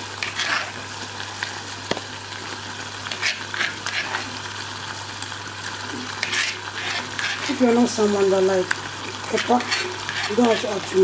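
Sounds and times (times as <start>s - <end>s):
stew sizzling in saucepan: 0.0s - 11.0s
spoon scraping: 0.2s - 0.8s, 3.1s - 4.3s, 6.1s - 7.6s, 9.3s - 10.8s.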